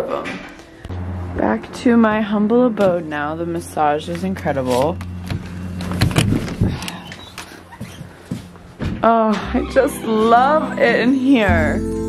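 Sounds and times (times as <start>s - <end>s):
footsteps: 0.2s - 9.6s
steady low hum: 0.6s - 9.0s.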